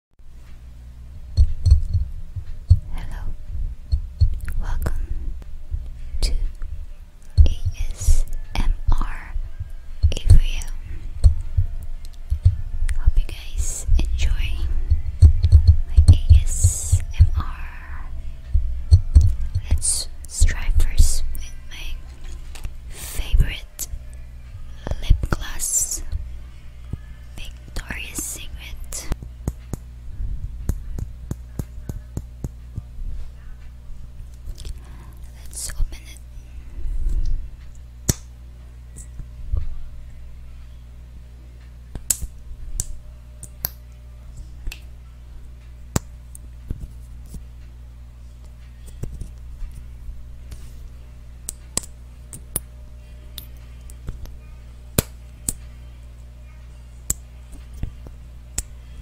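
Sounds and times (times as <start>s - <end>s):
fingertips tapping microphone grille: 1.2s - 9.0s, 9.6s - 17.6s, 18.4s - 21.3s
microphone handling thuds: 1.4s - 4.4s
hissy scratches: 13.2s - 18.1s.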